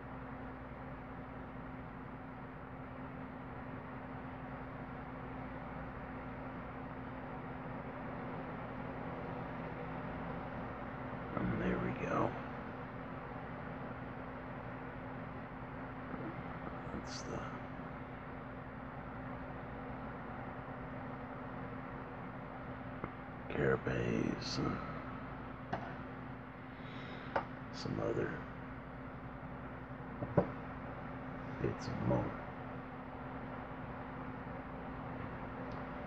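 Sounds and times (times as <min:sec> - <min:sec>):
low hum: 0:00.0 - 0:36.0.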